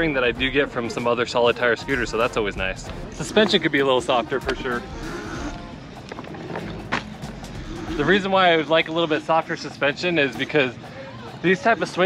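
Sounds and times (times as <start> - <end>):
background music: 0.0 - 12.0
scooter tires rolling on concrete: 2.0 - 8.9.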